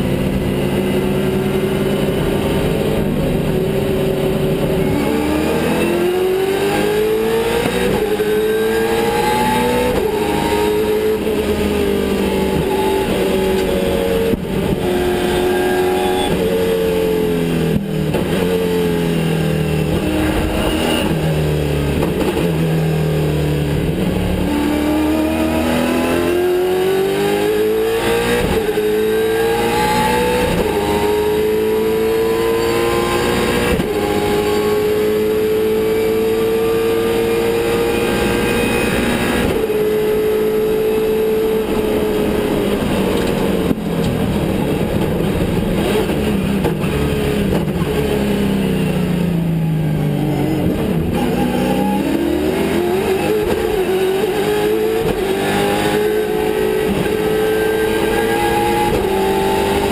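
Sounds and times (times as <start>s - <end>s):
racing car engine revving: 0.0s - 59.9s.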